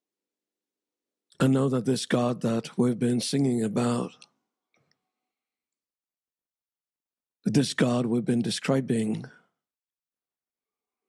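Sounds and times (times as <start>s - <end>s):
man's voice: 1.4s - 4.2s, 7.5s - 9.3s.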